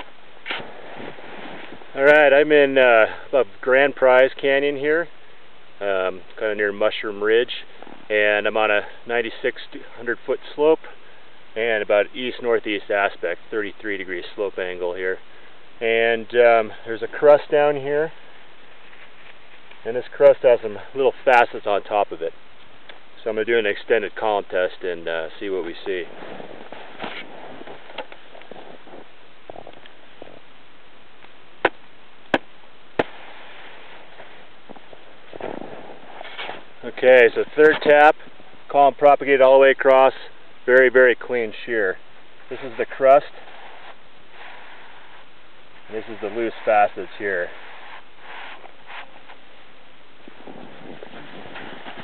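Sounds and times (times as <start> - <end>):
crunching in snow: 0.0 - 3.0, 25.2 - 30.5, 33.0 - 38.0, 42.5 - 49.5, 50.2 - 52.0
steady hiss: 0.0 - 52.0
faint handling noises: 16.5 - 20.1.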